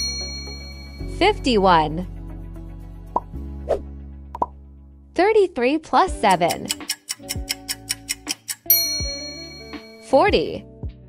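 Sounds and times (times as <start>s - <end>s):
quiz background music: 0.0s - 11.0s
rising pop sound effects: 3.1s - 4.6s.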